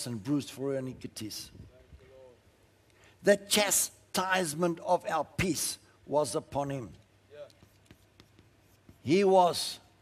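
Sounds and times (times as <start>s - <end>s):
chalk scratching on a chalkboard: 7.4s - 9.8s.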